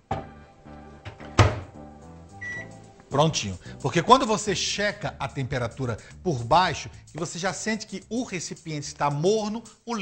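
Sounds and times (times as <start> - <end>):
microwave door clunk: 1.0 - 1.7
short high beep: 2.4 - 2.7.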